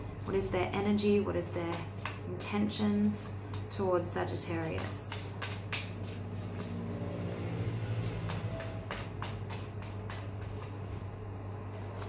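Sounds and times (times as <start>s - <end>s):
cards being shuffled: 4.7s - 7.2s, 8.0s - 12.0s.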